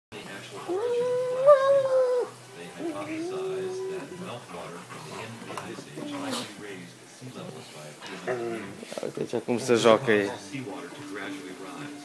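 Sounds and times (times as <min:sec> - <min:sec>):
dog howling whine: 0:00.6 - 0:04.3.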